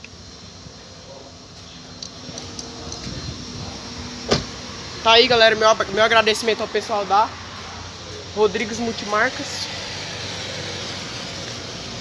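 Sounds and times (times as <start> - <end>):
road traffic hiss and hum: 0.0 - 12.0.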